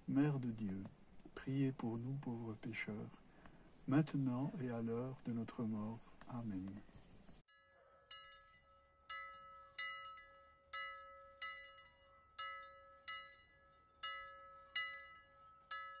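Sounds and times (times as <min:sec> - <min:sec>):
soft bell-like chimes: 0:04.9 - 0:16.0.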